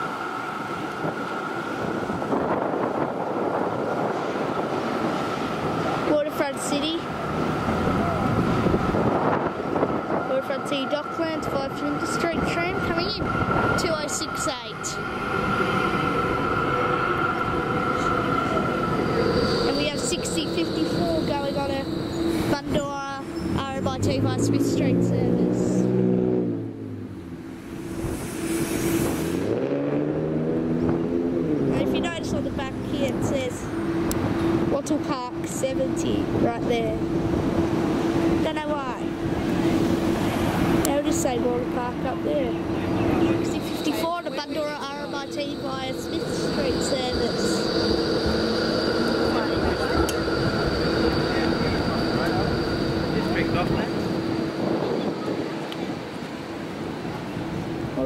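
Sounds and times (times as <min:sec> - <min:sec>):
tram motor tone rising: 0:00.0 - 0:58.0
tram whine: 0:00.0 - 0:58.0.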